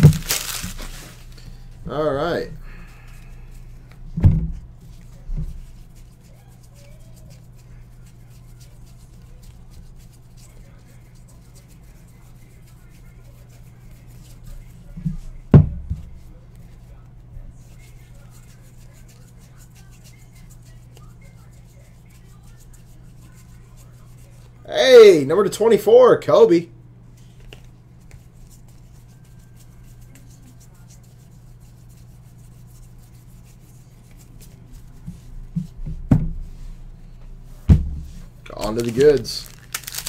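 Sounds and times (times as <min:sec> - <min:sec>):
trading cards handled: 0:00.0 - 0:01.4, 0:38.5 - 0:40.0
low steady hum: 0:00.0 - 0:40.0
dull thumps: 0:04.1 - 0:04.6, 0:15.5 - 0:16.2, 0:37.6 - 0:38.3.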